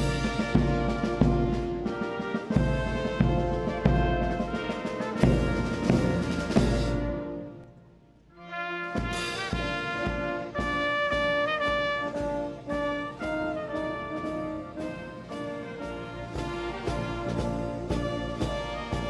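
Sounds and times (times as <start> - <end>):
trumpets and trombones playing: 0.0 - 19.0.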